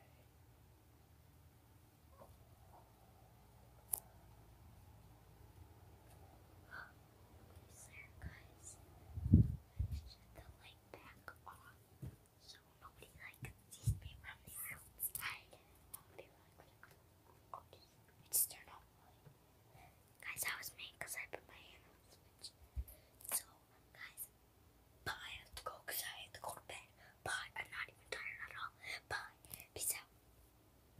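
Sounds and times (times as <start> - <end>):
child whispering: 6.7 - 7.0, 7.6 - 8.8, 9.7 - 11.8, 12.4 - 16.9, 17.5 - 19.1, 20.2 - 22.6, 23.2 - 24.3, 25.1 - 30.1.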